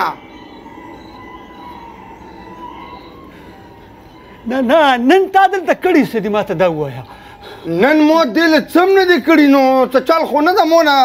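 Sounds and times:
faint held tone: 0:00.0 - 0:07.8
background noise: 0:00.0 - 0:11.0.

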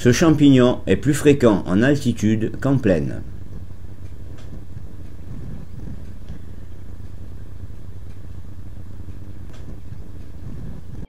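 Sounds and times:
low outdoor rumble: 0:00.0 - 0:11.0
faint clicks: 0:03.4 - 0:11.0.

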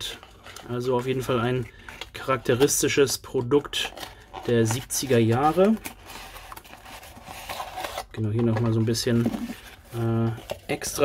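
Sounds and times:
cardboard rustling and scraping: 0:00.0 - 0:11.0.

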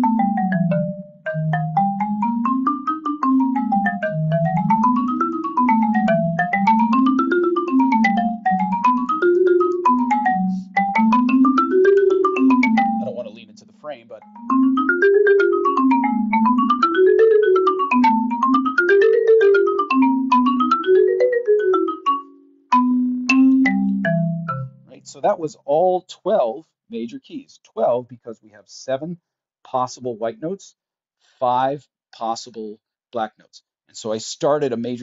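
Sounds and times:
marimba playing rapid scales: 0:00.0 - 0:24.9.

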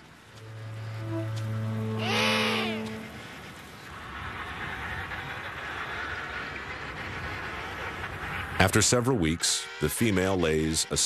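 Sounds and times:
music with low sustained notes: 0:00.0 - 0:03.6
penguin warbling call: 0:00.6 - 0:03.6.

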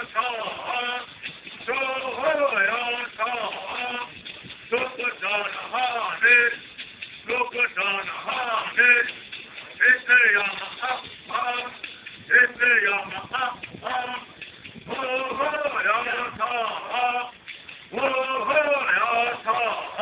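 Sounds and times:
men singing in unison: 0:00.0 - 0:06.6, 0:07.3 - 0:09.2, 0:09.8 - 0:20.0.

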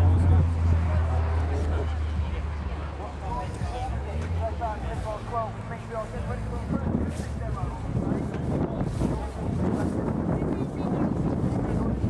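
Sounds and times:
faint indistinct voices: 0:00.0 - 0:12.0
wind buffeting microphone: 0:04.8 - 0:12.0.

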